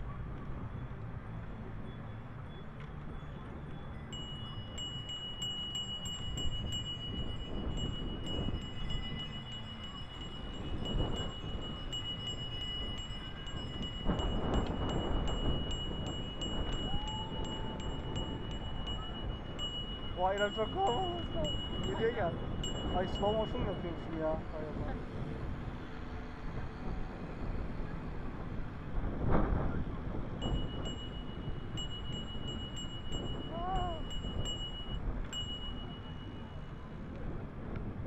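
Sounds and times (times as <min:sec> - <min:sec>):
bicycle road rumble: 0:00.0 - 0:38.0
wind: 0:00.0 - 0:38.0
high-pitched ringing tone: 0:03.2 - 0:24.5, 0:30.4 - 0:37.0.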